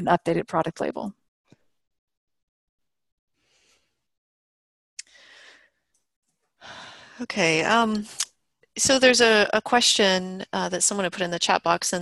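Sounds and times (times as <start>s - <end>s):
person speaking: 7.2s - 9.6s.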